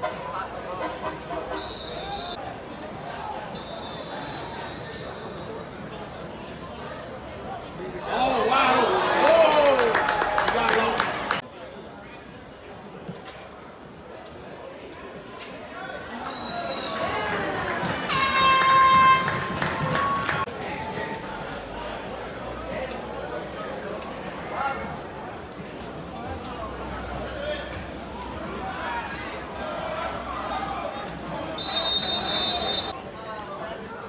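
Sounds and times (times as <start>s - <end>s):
outdoor hubbub: 0.0s - 34.0s
voices and chatter: 0.0s - 34.0s
air horn blast: 18.1s - 19.6s.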